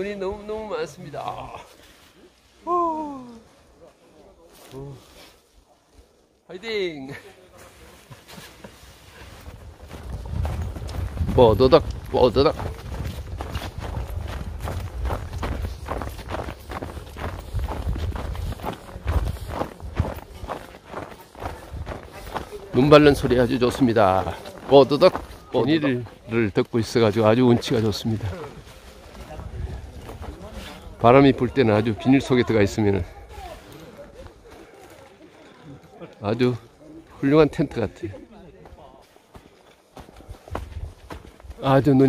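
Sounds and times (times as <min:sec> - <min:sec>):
faint people talking: 0:00.0 - 0:42.0
footsteps crunching in snow: 0:07.3 - 0:35.3, 0:38.6 - 0:42.0.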